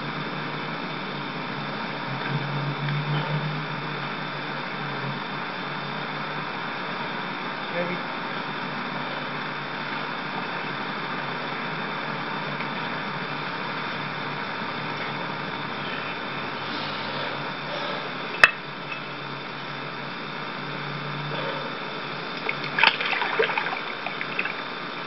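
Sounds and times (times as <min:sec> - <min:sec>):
faint hum: 0:00.0 - 0:25.0.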